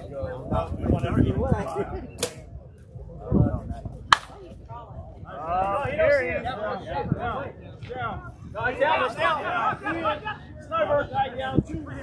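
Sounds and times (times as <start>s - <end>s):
players' voices: 0.0s - 12.0s
bat striking ball: 4.1s - 4.4s.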